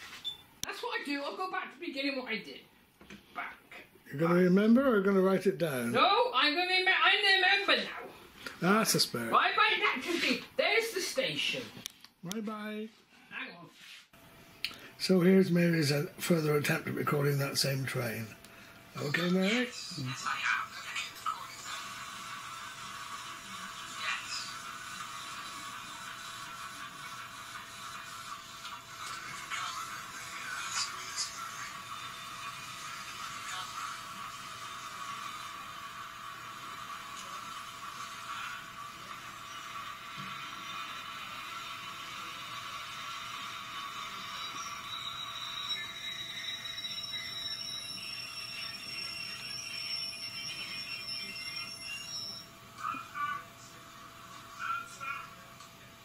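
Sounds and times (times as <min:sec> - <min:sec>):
train passing tinny: 0:29.4 - 0:52.4
high whistling tones: 0:44.0 - 0:52.5.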